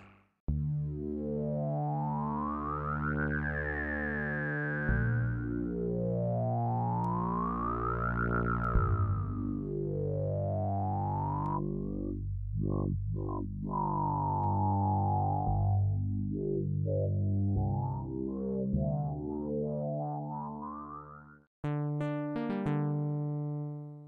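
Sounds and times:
synthesizer chords with filter sweep: 0.0 - 24.0.

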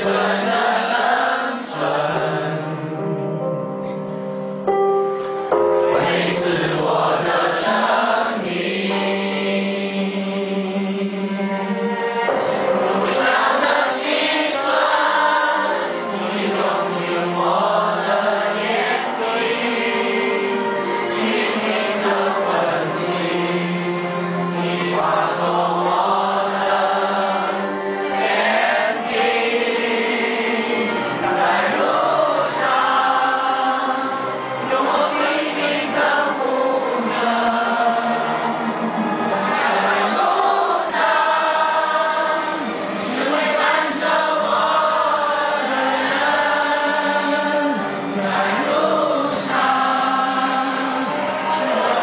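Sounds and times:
group of people singing: 0.0 - 4.0, 5.6 - 52.0.

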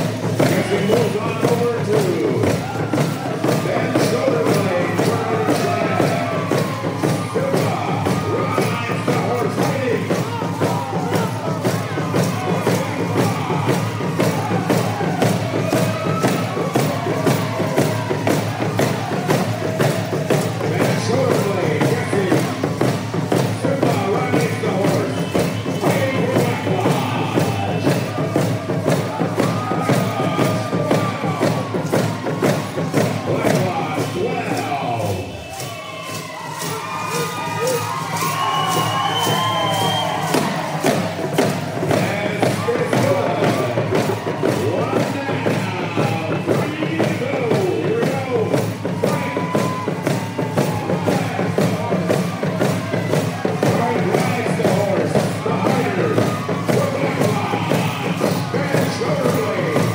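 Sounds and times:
hand drums beating: 0.0 - 59.9
shouts and cheering: 0.0 - 59.9.

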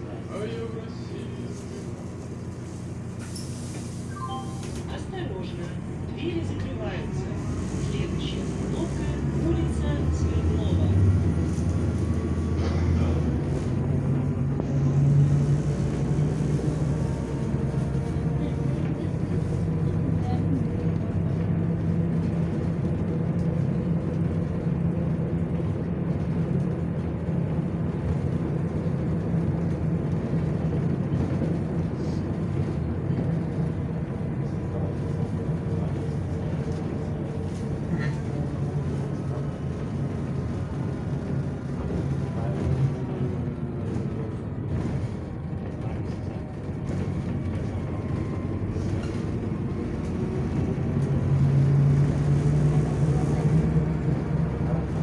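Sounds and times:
bus engine drone: 0.0 - 55.0
road and tyre noise: 0.0 - 55.0.

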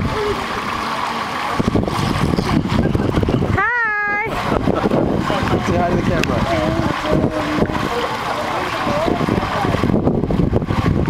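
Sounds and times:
pool water splashing: 0.0 - 11.0.

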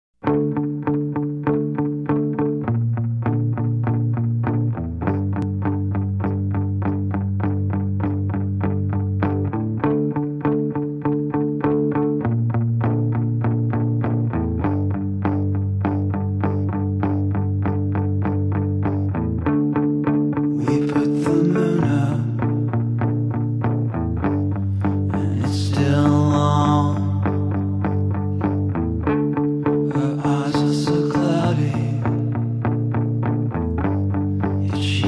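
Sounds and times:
bass line: 0.2 - 35.0
picked guitar notes: 0.2 - 35.0.

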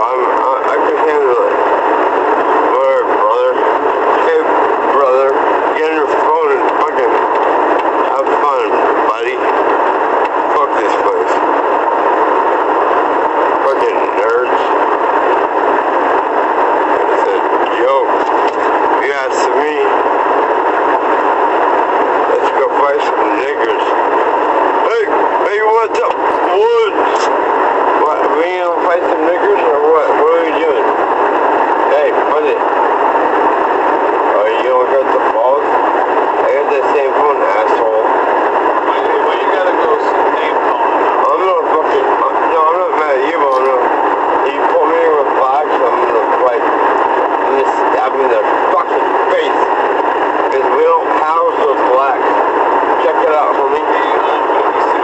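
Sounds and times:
constant hiss: 0.0 - 55.0
indistinct talking through small speaker: 0.0 - 55.0.

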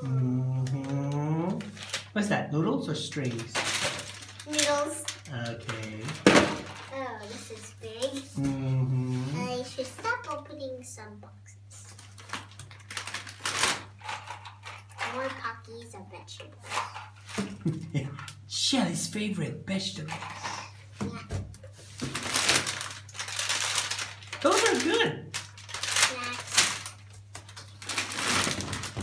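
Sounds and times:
plastic packages crinkling: 1.6 - 2.2, 3.2 - 7.6, 11.8 - 15.3, 21.8 - 29.0.

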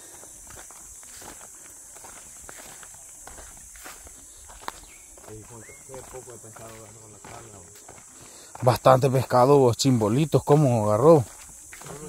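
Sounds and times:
footsteps on dirt trail: 0.0 - 12.0
steady high hiss: 0.0 - 12.0.

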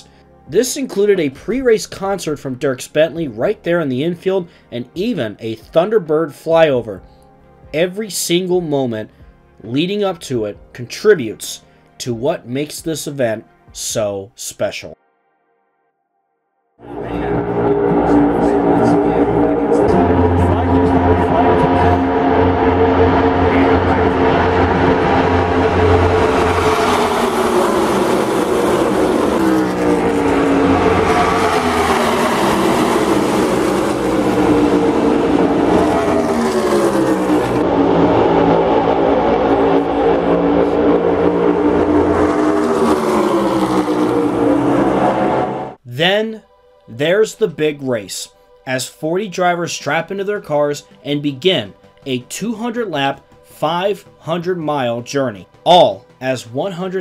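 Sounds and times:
race cars passing at full speed: 16.8 - 45.8.

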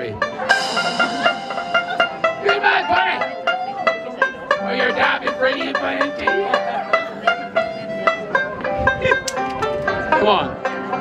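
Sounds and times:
banjo picking: 0.0 - 11.0
fiddle: 0.0 - 11.0
stage piano: 0.5 - 4.0.

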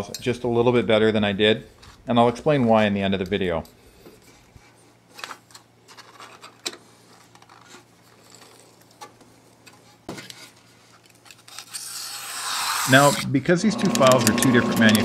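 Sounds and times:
paper rustling and scraping: 4.3 - 13.3
knife slicing paper: 11.4 - 13.3.

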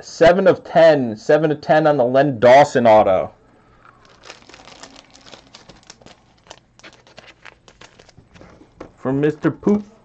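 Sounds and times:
plastic packaging crinkling: 3.8 - 9.0.

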